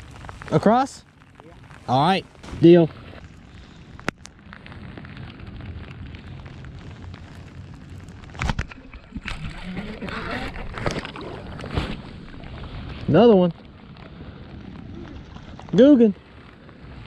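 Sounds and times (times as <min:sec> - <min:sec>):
wind and rain on microphone: 0:00.0 - 0:17.0.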